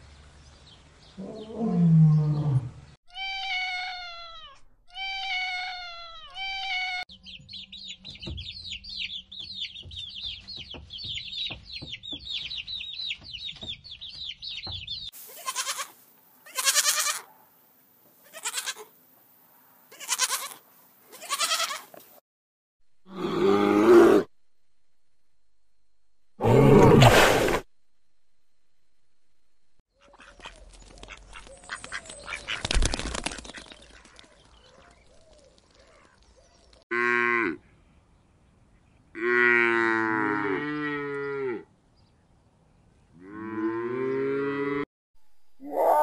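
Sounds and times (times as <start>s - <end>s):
cat meowing: 3.1s - 7.0s
chicks peeping: 7.1s - 15.1s.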